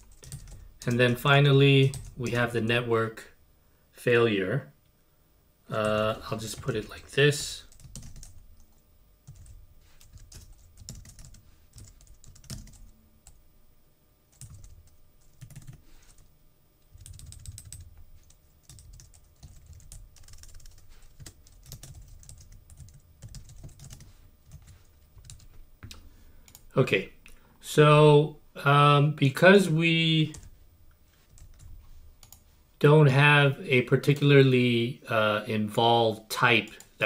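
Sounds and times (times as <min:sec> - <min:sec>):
typing on computer keyboard: 0:00.0 - 0:00.9, 0:07.7 - 0:12.9, 0:14.3 - 0:16.3, 0:16.9 - 0:26.6.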